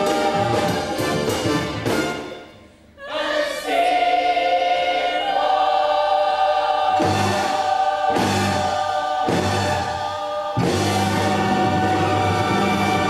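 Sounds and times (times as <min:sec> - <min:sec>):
choir singing held chord: 0:00.0 - 0:02.2, 0:03.0 - 0:13.0.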